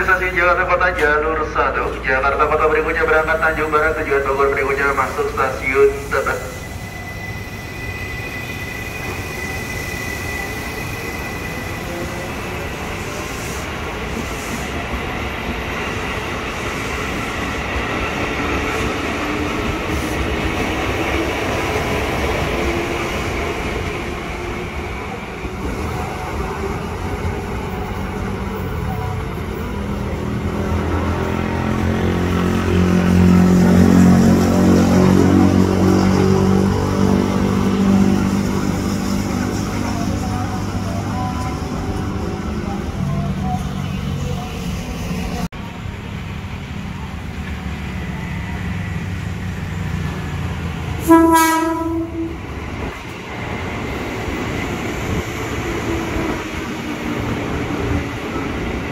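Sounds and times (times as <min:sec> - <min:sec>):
train rail running noise: 0:00.0 - 0:58.9.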